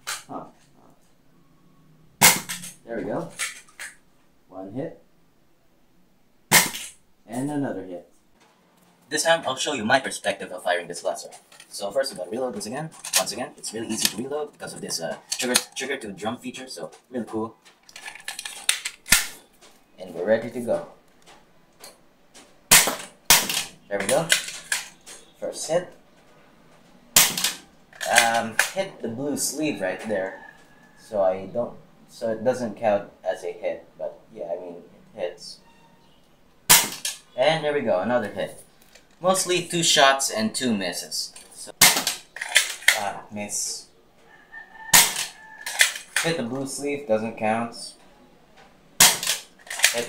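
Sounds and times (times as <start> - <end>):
sharp knock: 2.2 - 2.6, 6.5 - 7.0.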